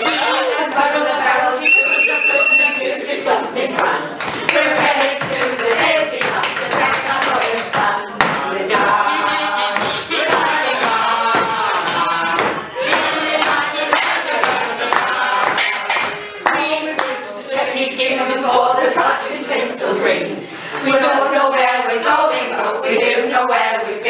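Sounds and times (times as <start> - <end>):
women singing wordless tune: 0.0 - 24.0.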